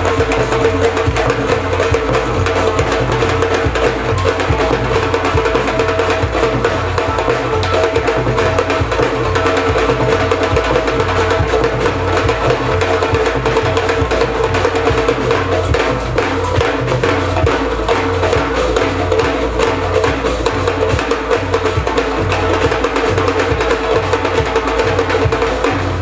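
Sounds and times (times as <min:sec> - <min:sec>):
drum kit: 0:00.0 - 0:26.0
woodblock strikes: 0:00.0 - 0:26.0.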